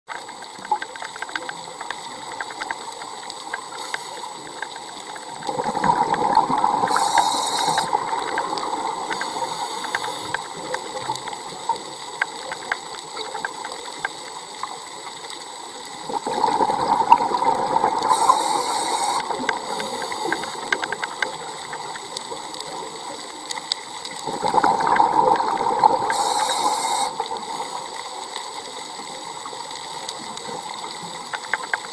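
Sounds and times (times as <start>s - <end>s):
faint clicks: 0.1s - 16.4s, 17.3s - 31.9s
underwater hiss: 3.4s - 31.9s
regulator bubbles exhaled: 5.1s - 11.6s, 16.0s - 21.9s, 24.2s - 27.9s.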